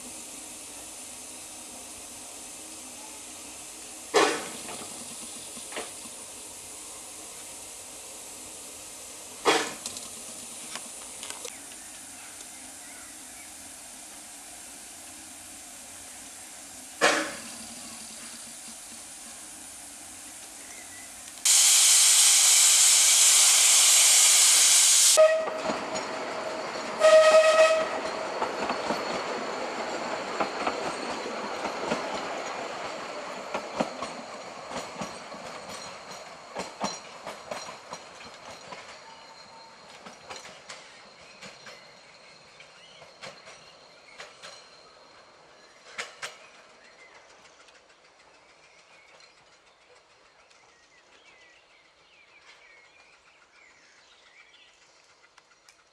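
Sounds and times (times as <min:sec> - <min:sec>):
steam locomotive blast of steam: 0:00.0 - 0:35.6
train wheels clicking over rail joints: 0:04.1 - 0:06.7, 0:09.3 - 0:12.5, 0:17.0 - 0:19.4, 0:25.2 - 0:55.9
train whistle toot: 0:21.5 - 0:25.7, 0:27.0 - 0:28.0.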